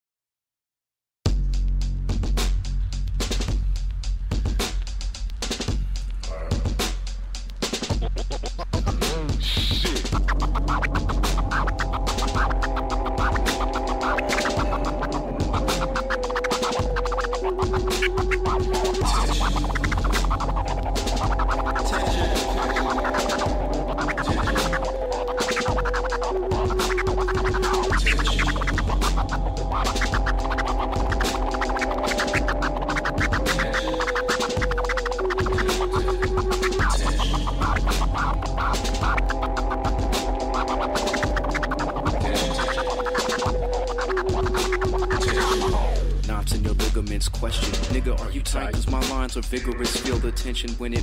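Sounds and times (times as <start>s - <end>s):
deep steady bass: 1.3s - 16.2s, 16.8s - 25.1s, 25.7s - 34.0s, 34.6s - 42.6s, 43.6s - 51.0s
turntable scratching: 3.2s - 51.0s.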